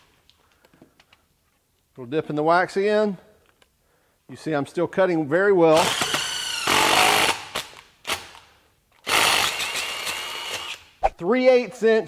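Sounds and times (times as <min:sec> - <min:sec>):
impact driver drilling through steel: 0:05.8 - 0:08.3, 0:09.0 - 0:10.8.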